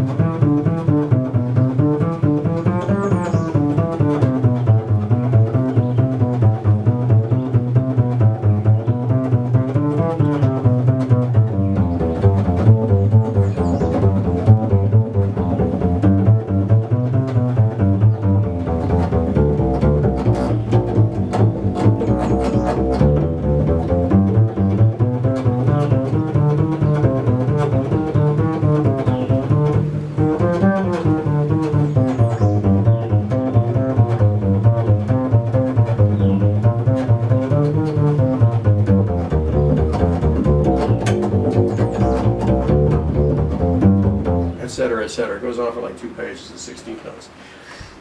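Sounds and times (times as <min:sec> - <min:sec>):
double bass played pizzicato: 0:00.0 - 0:45.9.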